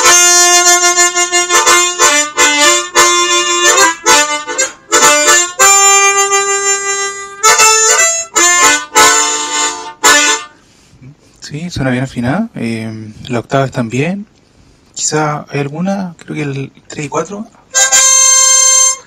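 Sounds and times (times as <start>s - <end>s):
harmonica playing: 0.0s - 10.9s, 17.7s - 19.0s.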